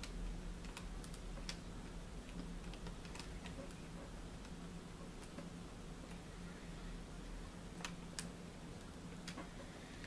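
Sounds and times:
laptop keyboard typing clicks: 0:00.0 - 0:01.6, 0:02.2 - 0:04.6
steady low hum: 0:00.0 - 0:10.0.

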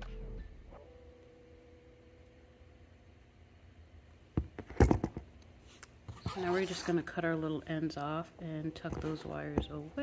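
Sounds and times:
faint background music: 0:06.1 - 0:10.0.

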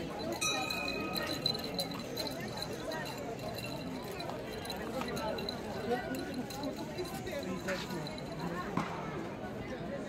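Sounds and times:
crowd chatter: 0:00.0 - 0:10.0
bell ringing: 0:00.2 - 0:02.7.

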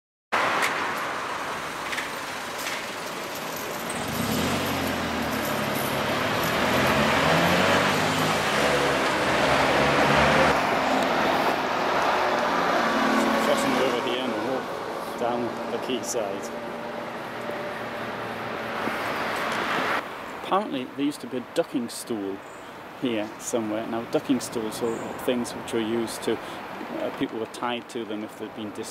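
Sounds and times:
road noise: 0:00.3 - 0:28.9
vehicle driving past: 0:03.7 - 0:20.0.

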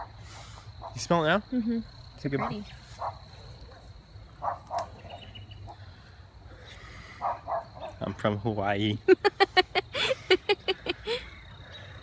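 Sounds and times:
person sniffing: 0:00.2 - 0:00.7.

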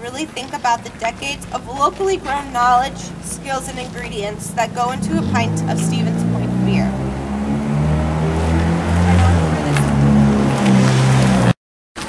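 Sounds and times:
vehicle engine rumbling: 0:00.0 - 0:11.6.

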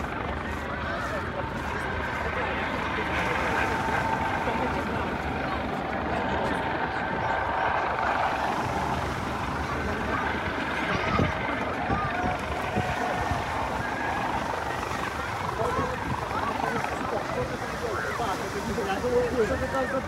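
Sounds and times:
helicopter rotor and engine: 0:00.0 - 0:20.0
onlookers chattering: 0:00.0 - 0:20.0.

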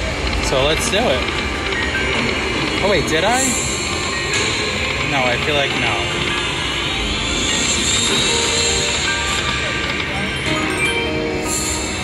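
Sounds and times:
slot machine reels clicking: 0:00.0 - 0:12.0.

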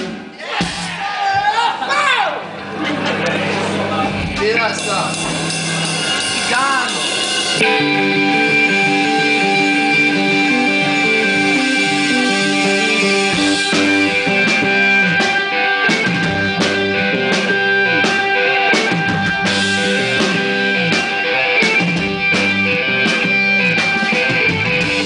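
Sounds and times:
drum kit hits: 0:00.0 - 0:01.1, 0:04.0 - 0:25.0
bass guitar: 0:00.0 - 0:25.0
electric guitar: 0:02.4 - 0:25.0.

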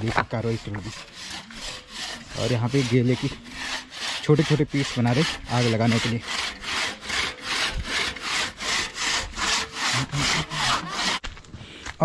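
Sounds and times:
hand saw cutting wood: 0:00.0 - 0:11.3.

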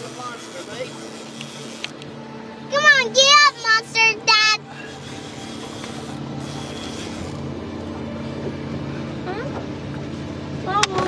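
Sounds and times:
boat motor humming: 0:00.0 - 0:11.0.

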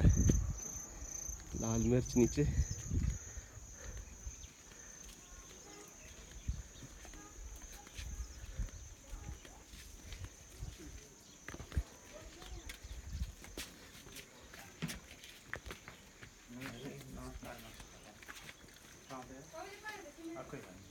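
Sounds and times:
footsteps walking: 0:02.8 - 0:20.9.

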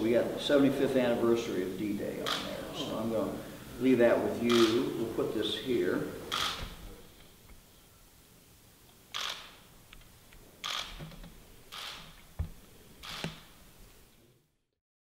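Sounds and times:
camera shutter clicks: 0:02.3 - 0:02.5, 0:04.5 - 0:04.9, 0:06.3 - 0:06.8, 0:09.1 - 0:09.6, 0:10.6 - 0:11.0, 0:11.7 - 0:12.0, 0:13.0 - 0:13.5.

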